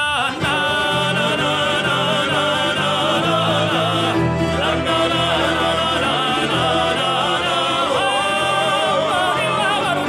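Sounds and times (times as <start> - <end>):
men singing in harmony: 0.0 - 10.0
plucked strings accompaniment: 0.0 - 10.0.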